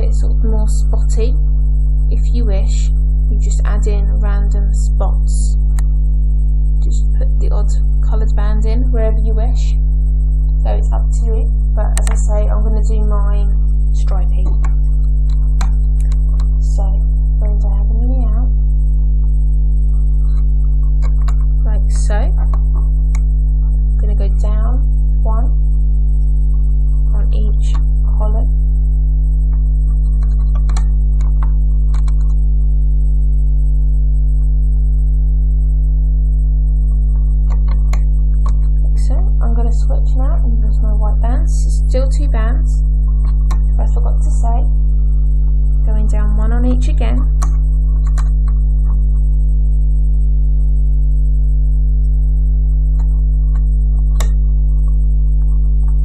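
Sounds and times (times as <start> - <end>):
loud electrical hum: 0.0 - 56.0.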